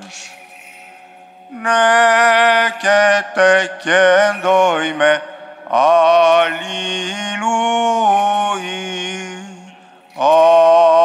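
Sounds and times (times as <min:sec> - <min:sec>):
liturgical chant: 0:00.0 - 0:11.0.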